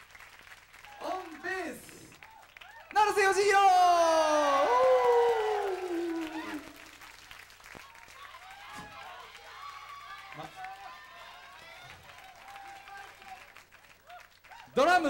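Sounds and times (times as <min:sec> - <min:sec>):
audience applause: 0:00.0 - 0:15.0
audience cheering: 0:00.7 - 0:15.0
man announcing over pa: 0:01.0 - 0:02.1, 0:03.0 - 0:04.7.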